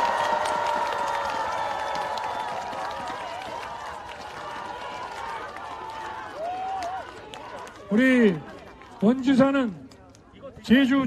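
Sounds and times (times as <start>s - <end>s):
crowd cheering and calling out: 0.0s - 9.4s.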